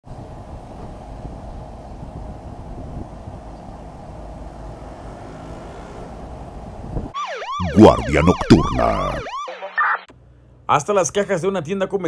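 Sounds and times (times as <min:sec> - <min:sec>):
low traffic rumble: 0:00.1 - 0:09.2.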